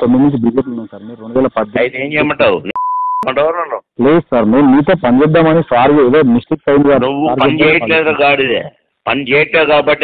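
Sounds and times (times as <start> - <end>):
man talking on phone: 0.0 - 10.0
censor bleep: 2.7 - 3.3.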